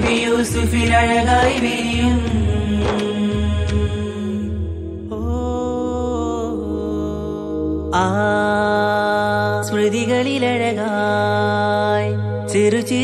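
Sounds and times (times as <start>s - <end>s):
low drone: 0.0s - 13.0s.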